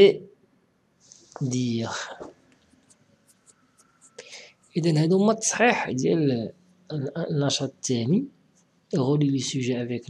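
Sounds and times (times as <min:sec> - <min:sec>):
person speaking: 0:00.0 - 0:00.2, 0:01.2 - 0:02.3, 0:04.1 - 0:08.3, 0:08.9 - 0:10.0.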